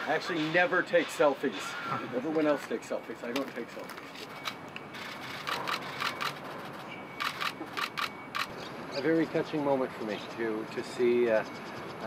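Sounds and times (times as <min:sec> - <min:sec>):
camera shutters clicking: 0:04.2 - 0:08.6.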